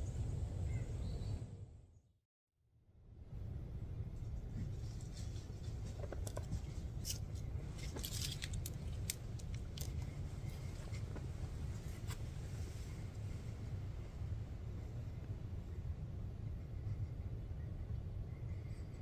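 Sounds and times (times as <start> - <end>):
steady low rumble: 0.0 - 2.0, 2.8 - 19.0
small sharp clicks and crackles: 4.8 - 11.3.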